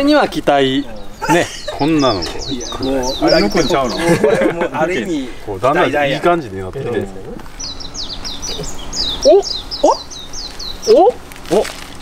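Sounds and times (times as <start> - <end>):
songbird singing: 0.0 - 12.0.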